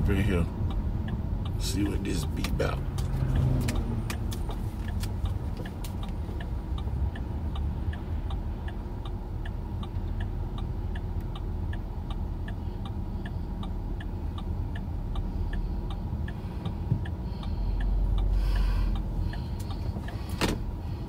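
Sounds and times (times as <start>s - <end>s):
low rumble of moving car: 0.0s - 21.0s
turn signal clicking: 0.2s - 21.0s.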